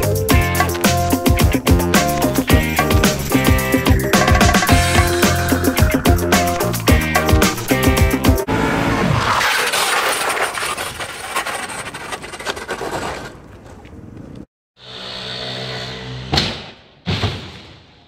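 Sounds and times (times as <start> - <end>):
soundtrack music: 0.0 - 8.9.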